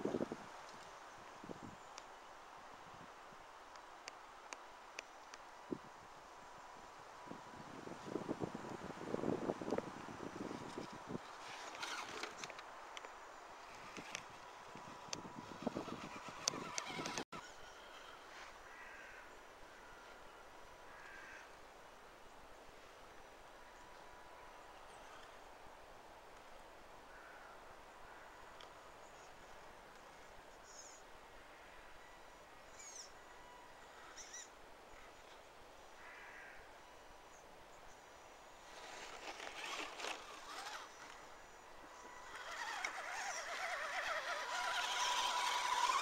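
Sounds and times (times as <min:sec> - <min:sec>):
rc car driving over dirt and stones: 0:08.0 - 0:18.6, 0:38.6 - 0:46.0.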